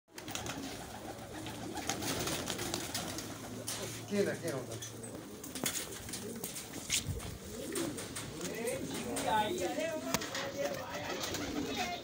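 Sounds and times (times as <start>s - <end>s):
pigeons cooing: 0.1s - 12.0s.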